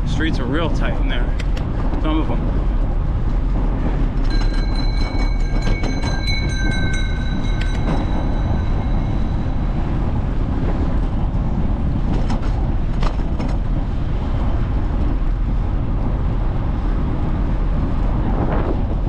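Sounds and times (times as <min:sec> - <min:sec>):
wind and bicycle tyre noise: 0:00.0 - 0:19.0
high steady squeal: 0:03.9 - 0:12.1.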